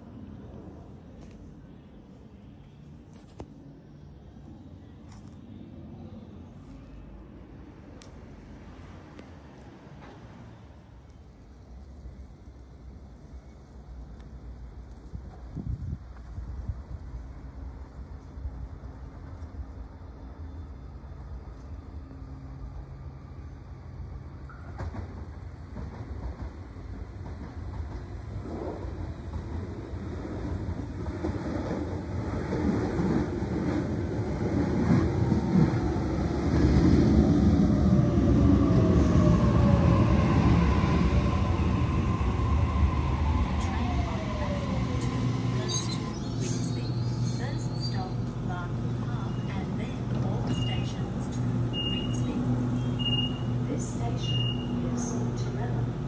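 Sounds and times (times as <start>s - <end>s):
short high beeps: 51.7s - 53.6s.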